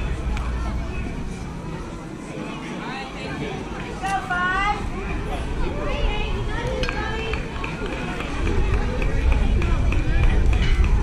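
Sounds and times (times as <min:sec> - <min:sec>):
faint voices talking: 0:00.0 - 0:11.0
wind rumbling on microphone: 0:04.8 - 0:11.0.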